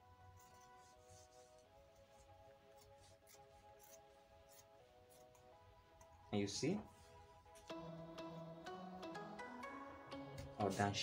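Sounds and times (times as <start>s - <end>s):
quiet background music: 0.0s - 11.0s
scissors cutting fabric: 0.2s - 6.3s.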